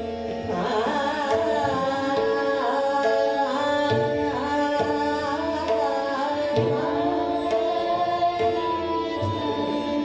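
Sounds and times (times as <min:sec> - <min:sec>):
sustained harmonium notes: 0:00.0 - 0:10.0
tabla strokes: 0:00.0 - 0:10.0
woman singing gliding melody: 0:00.0 - 0:10.0.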